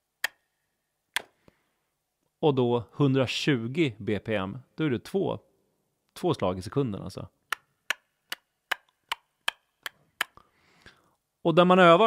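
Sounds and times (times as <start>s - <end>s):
metronome ticking: 7.5s - 10.4s.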